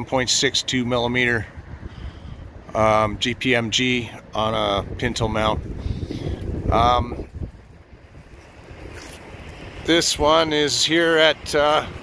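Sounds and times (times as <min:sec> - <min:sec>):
wind buffeting microphone: 0:00.4 - 0:12.0
low uneven rumble: 0:01.4 - 0:12.0.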